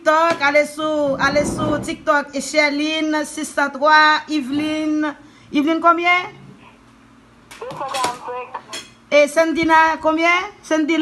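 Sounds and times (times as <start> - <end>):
person talking: 0.6 - 2.6, 7.6 - 10.4.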